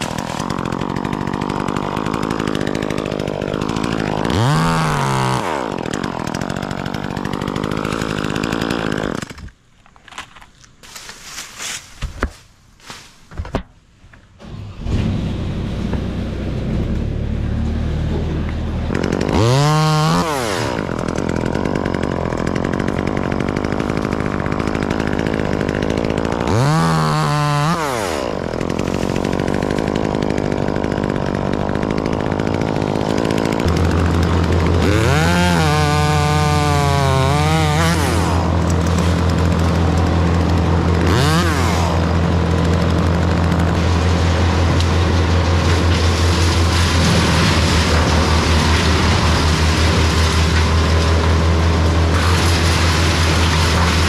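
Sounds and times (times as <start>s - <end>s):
chainsaw starting and revving: 0.0s - 9.6s, 14.4s - 54.0s
steady engine drone: 14.4s - 19.0s.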